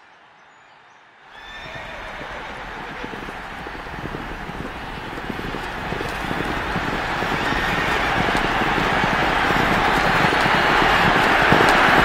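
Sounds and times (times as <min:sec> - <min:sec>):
horse neighing: 0:01.3 - 0:03.5
hoofbeats: 0:01.4 - 0:12.0.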